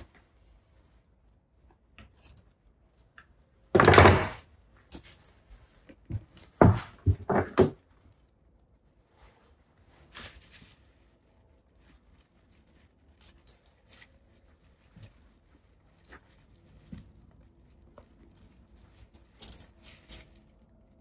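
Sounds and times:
pine needles brushing: 9.1s - 17.3s.

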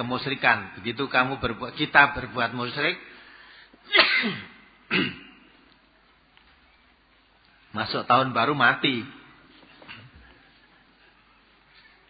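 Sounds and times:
man sneezing: 3.9s - 5.4s.

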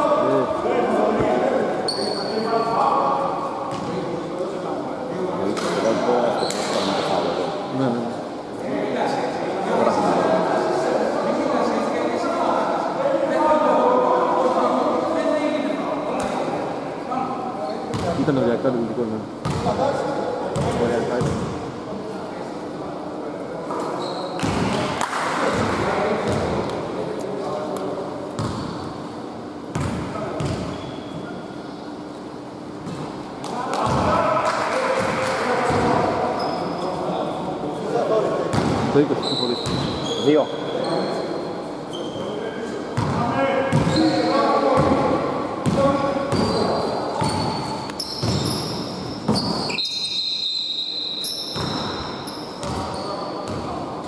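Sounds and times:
short high squeaks: 1.9s - 2.5s, 23.9s - 24.4s, 39.2s - 41.2s, 46.4s - 53.4s.

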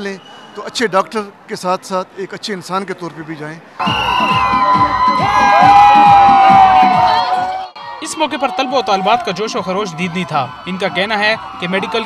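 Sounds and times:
music with drum beat: 3.8s - 7.6s
crowd cheering and shouting: 3.8s - 12.0s.

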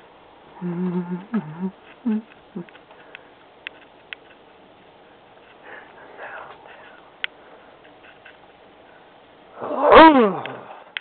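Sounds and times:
faint hiss: 4.4s - 11.0s
loud roar-like cry: 9.6s - 10.8s.

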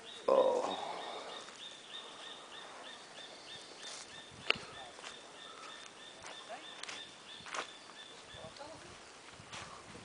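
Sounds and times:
bird chirping: 0.0s - 9.1s.

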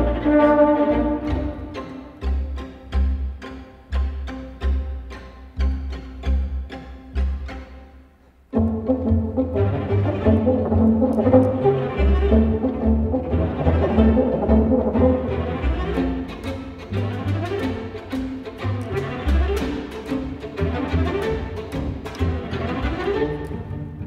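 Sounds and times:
string orchestra playing: 0.0s - 24.0s.

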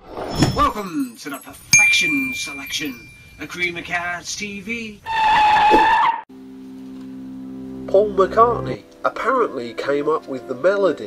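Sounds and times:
high steady tone: 1.7s - 3.9s.

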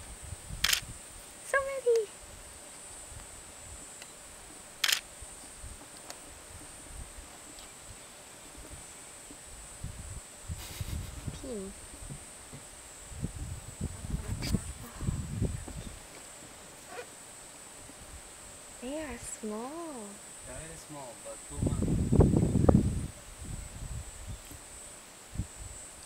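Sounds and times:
camera click: 0.6s - 0.9s, 4.8s - 5.1s.

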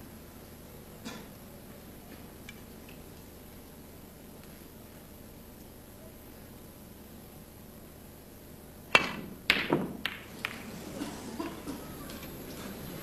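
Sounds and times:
cue striking ball: 8.9s - 10.7s
snooker balls knocking: 9.0s - 10.7s.

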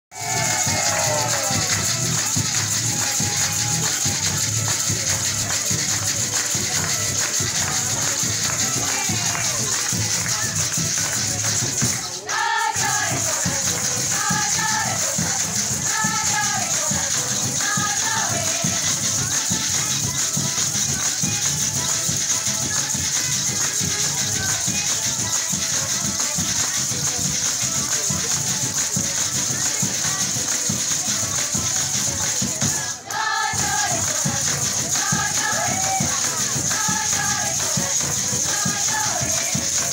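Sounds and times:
drum beats: 0.1s - 39.9s
maracas shaking: 0.1s - 39.9s
violin: 0.1s - 39.9s.

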